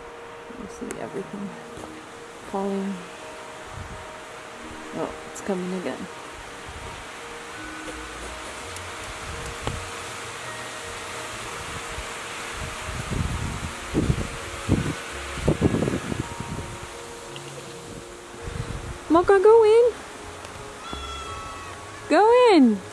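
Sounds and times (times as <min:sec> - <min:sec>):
wind buffeting microphone: 0:00.0 - 0:10.4, 0:11.3 - 0:22.5
faint sustained music notes: 0:00.0 - 0:22.9
wind rushing through trees: 0:00.0 - 0:22.9.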